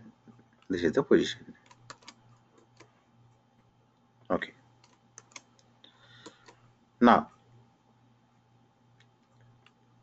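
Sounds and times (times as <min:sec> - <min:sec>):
computer keyboard keystrokes: 0:01.6 - 0:02.9, 0:04.8 - 0:06.6.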